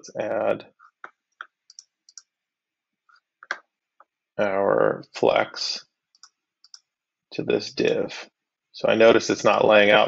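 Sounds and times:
computer mouse clicking: 1.0s - 2.3s, 6.1s - 6.9s.

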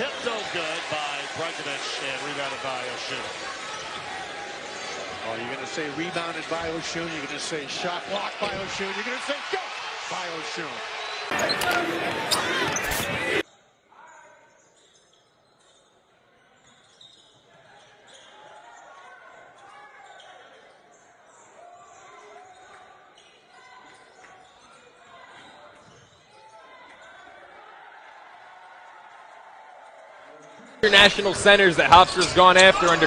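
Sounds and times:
faint voices: 11.3s - 13.4s.

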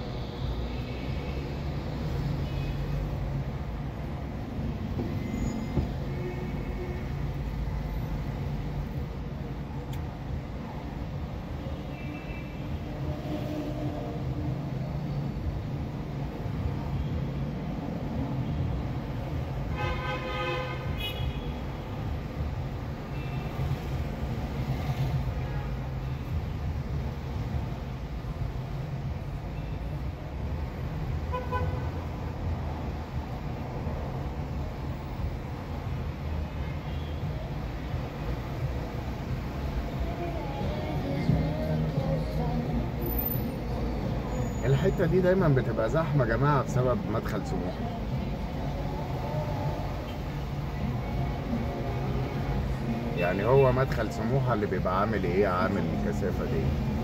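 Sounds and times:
city traffic rumble: 0.0s - 57.0s
vehicle horn: 19.7s - 21.6s, 31.3s - 32.0s.

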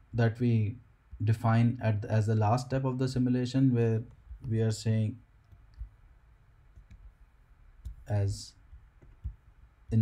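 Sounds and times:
person speaking: 0.0s - 5.9s, 7.8s - 10.0s
low room background: 0.0s - 10.0s.

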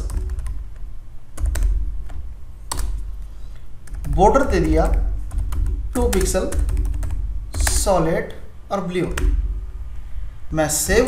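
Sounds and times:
steady low hum: 0.0s - 11.0s
keyboard keystrokes: 3.9s - 7.9s.

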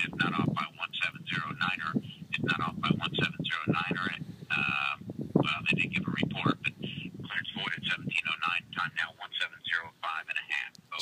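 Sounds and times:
man talking through phone speaker: 0.0s - 11.0s.

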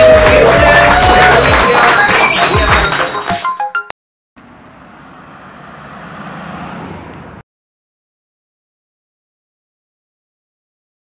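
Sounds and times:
road traffic hiss: 4.4s - 7.4s.

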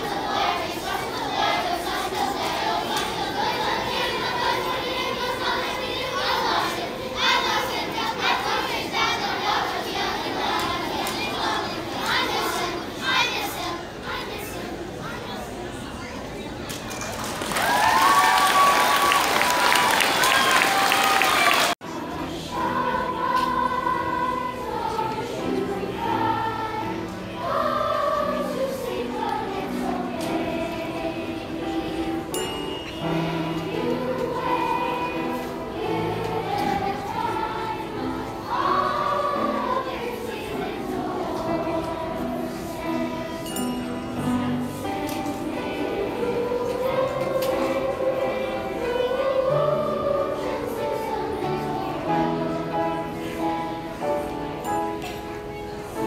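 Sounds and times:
children's choir singing: 0.0s - 56.0s.

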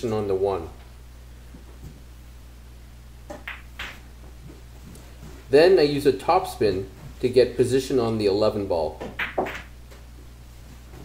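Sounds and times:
pool balls colliding: 3.2s - 4.6s, 9.0s - 10.0s
cue striking ball: 3.3s - 4.0s, 9.0s - 9.7s.

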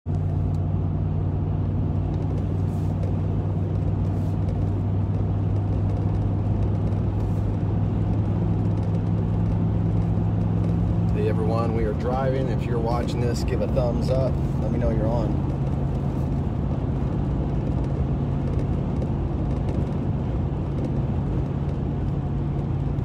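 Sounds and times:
engine and road noise in cabin: 0.0s - 23.0s.

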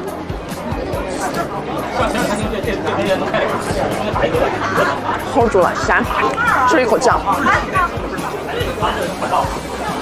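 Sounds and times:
chatter of many diners: 0.0s - 10.0s.

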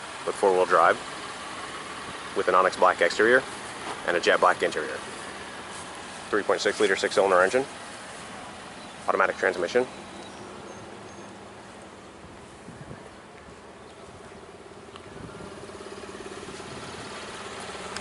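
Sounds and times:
vehicle engine idling: 0.0s - 18.0s.

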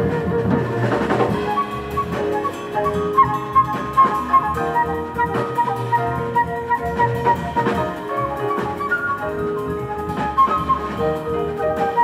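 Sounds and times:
drum kit: 0.0s - 12.0s
flute melody: 0.0s - 12.0s
piano: 0.0s - 12.0s
upright bass: 0.0s - 12.0s.

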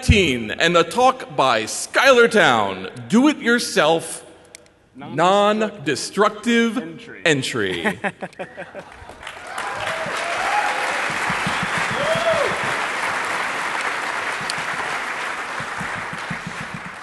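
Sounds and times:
people cheering: 8.4s - 17.0s
audience applauding: 8.5s - 17.0s.

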